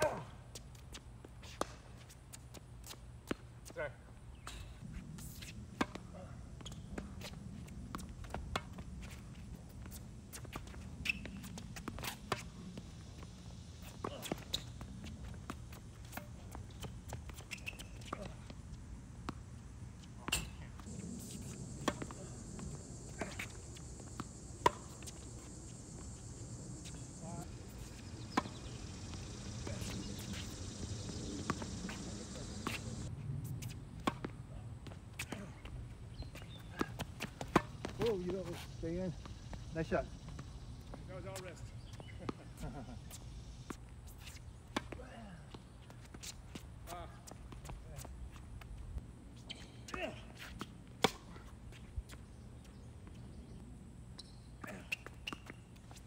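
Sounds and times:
outdoor hum: 0.0s - 56.0s
faint high hiss: 4.3s - 34.1s
tennis ball hit by rackets: 20.2s - 25.2s.

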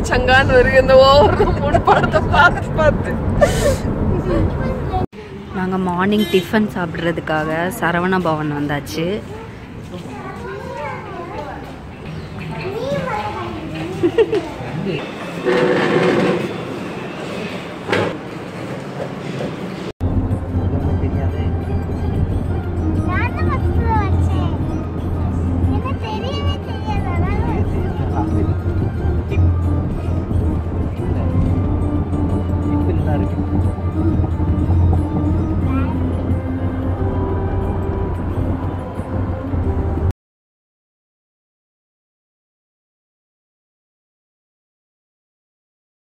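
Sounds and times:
car interior rumble: 0.0s - 5.1s, 20.0s - 40.1s
music: 20.0s - 40.1s.

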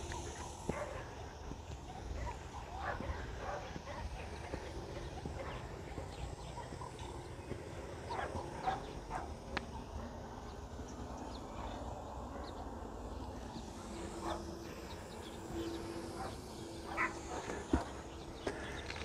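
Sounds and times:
steady low rumble: 0.0s - 19.0s.

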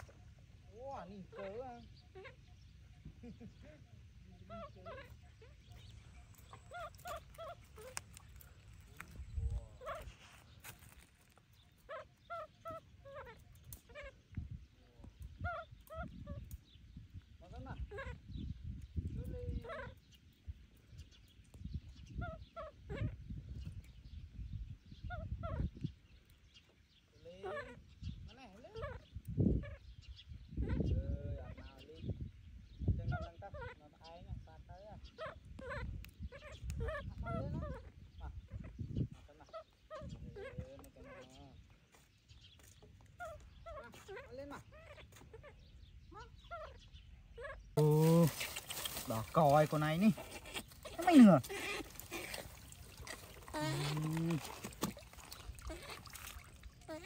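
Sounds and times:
baby monkey whimpering calls: 50.0s - 57.0s.

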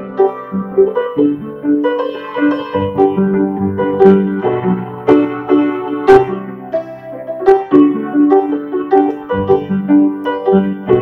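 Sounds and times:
out of tune upright piano: 0.0s - 11.0s.

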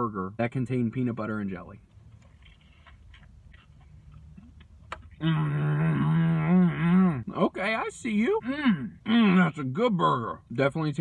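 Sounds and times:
chewing crunchy food: 2.1s - 5.2s.

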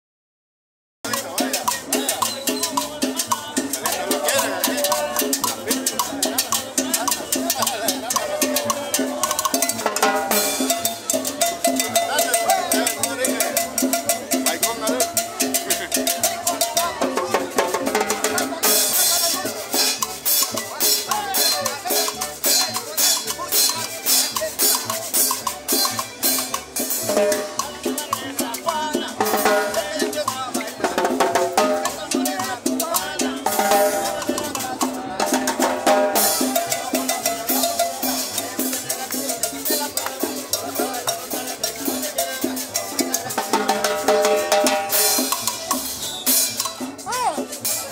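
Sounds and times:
accordion: 1.1s - 47.9s
drum kit with cymbals: 1.1s - 47.9s
guitar: 1.1s - 47.9s.

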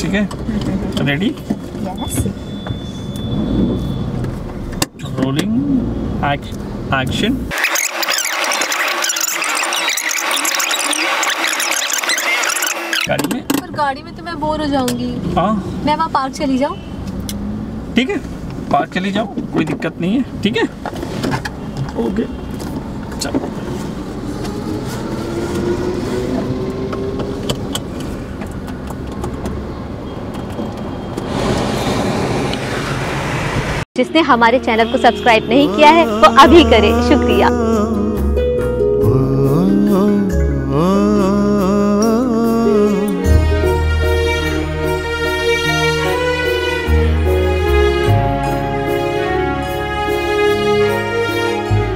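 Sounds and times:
road noise inside car: 0.0s - 37.7s
car engine running: 6.2s - 15.6s
sped-up squeaky voices: 7.5s - 13.2s, 34.7s - 37.8s.

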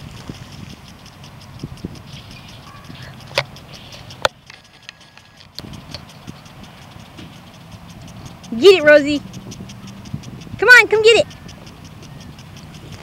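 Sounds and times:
sharp clicks: 0.0s - 13.0s
sprinklers ticking: 0.0s - 13.0s.

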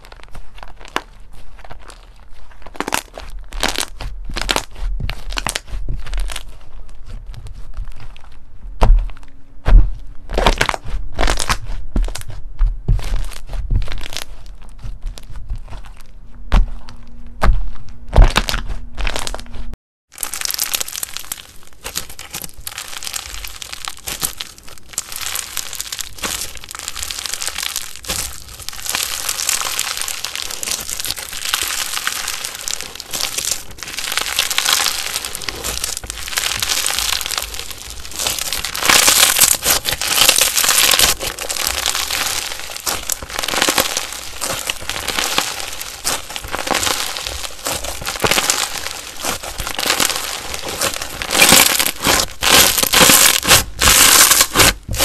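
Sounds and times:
hands squeezing slime crackling: 0.0s - 8.2s, 10.3s - 16.0s, 20.2s - 55.0s.

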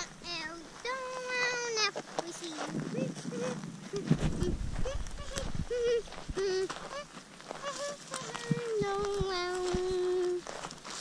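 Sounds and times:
child humming: 2.9s - 10.5s.

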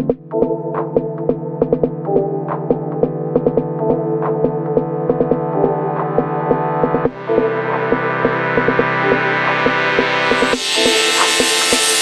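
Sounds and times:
held synth chord: 5.5s - 12.0s.

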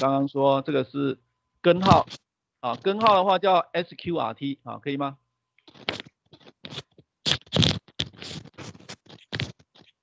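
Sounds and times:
scratchy rustling: 5.7s - 10.0s.

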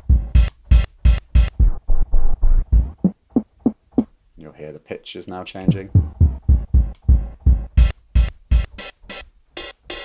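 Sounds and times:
jazzy drum loop hits: 0.0s - 4.2s, 5.6s - 10.0s.

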